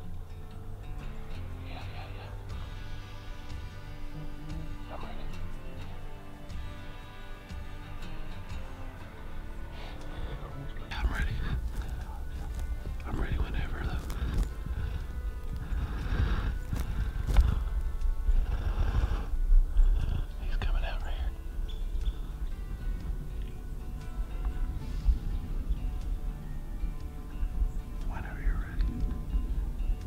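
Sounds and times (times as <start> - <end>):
background music: 0.0 - 30.0
low rumble: 0.0 - 30.0
whispered voices: 1.6 - 2.4, 4.8 - 5.6, 10.2 - 15.0, 19.9 - 21.4, 28.0 - 29.0.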